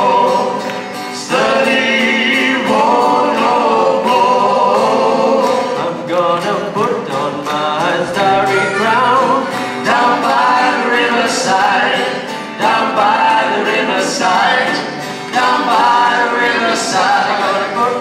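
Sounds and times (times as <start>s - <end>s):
acoustic guitars strummed: 0.0s - 18.0s
people singing: 0.0s - 18.0s.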